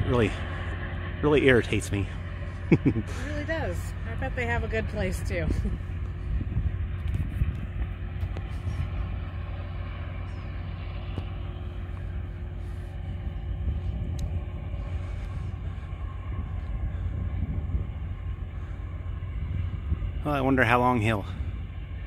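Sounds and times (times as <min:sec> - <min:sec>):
faint constant hum: 0:00.0 - 0:22.0
low rumble: 0:00.0 - 0:22.0.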